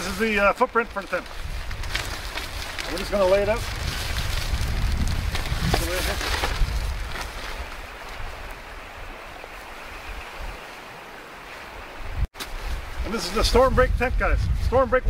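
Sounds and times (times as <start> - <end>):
nylon sheet rustling: 0.0 - 8.4
wind rumble on microphone: 0.0 - 10.8, 11.8 - 15.0.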